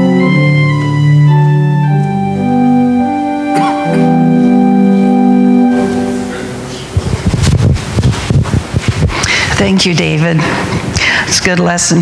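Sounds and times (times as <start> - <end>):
microphone handling noise: 5.7 - 9.8.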